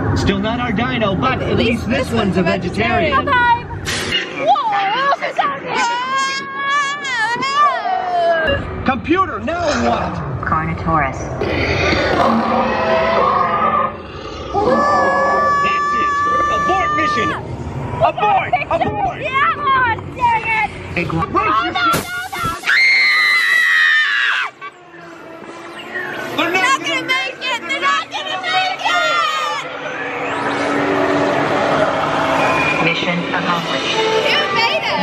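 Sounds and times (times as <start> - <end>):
low rumble: 8.5 - 15.7
high-pitched wavering cry: 11.4 - 17.4.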